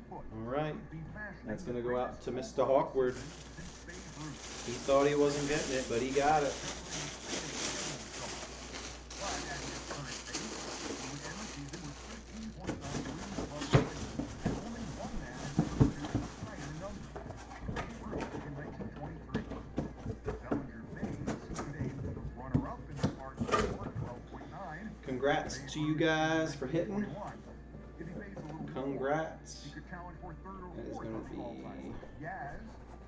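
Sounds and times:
plastic bag crinkling: 0:02.8 - 0:17.1.

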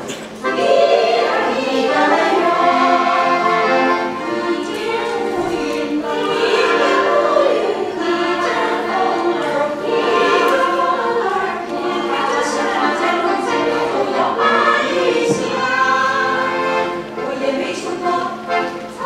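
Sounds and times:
piano accordion: 0:00.0 - 0:19.0
women's chorus singing: 0:00.4 - 0:19.0.

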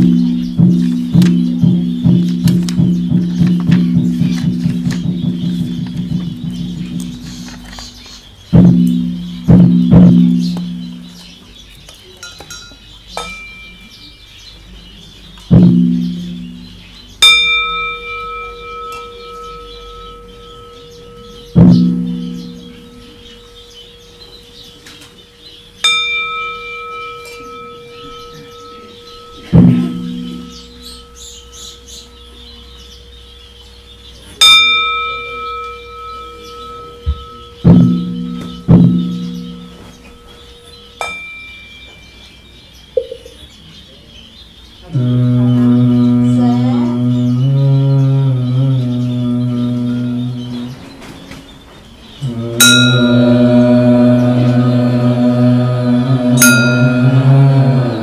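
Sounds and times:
deep hollow knocks: 0:00.0 - 0:08.0, 0:27.4 - 0:31.1, 0:37.0 - 0:40.6
ritual bell ringing: 0:00.0 - 0:11.3, 0:12.2 - 0:43.4, 0:52.2 - 0:58.0
man chanting: 0:44.8 - 0:51.0, 0:52.2 - 0:58.0.

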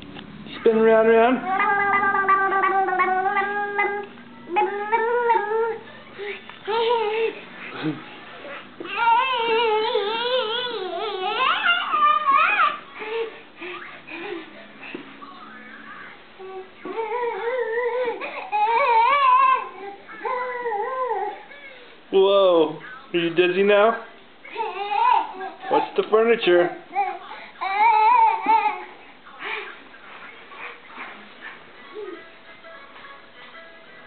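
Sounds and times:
high voice sing-song tones: 0:01.4 - 0:05.7
baby high-pitched wavering calls: 0:01.4 - 0:07.4.

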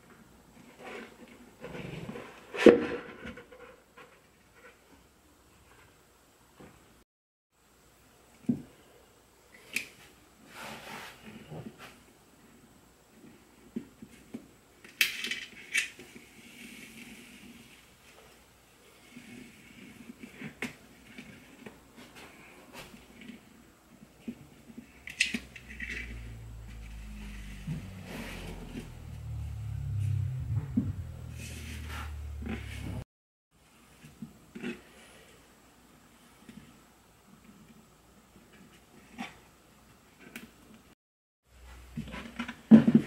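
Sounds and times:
low rumble: 0:25.4 - 0:33.0.

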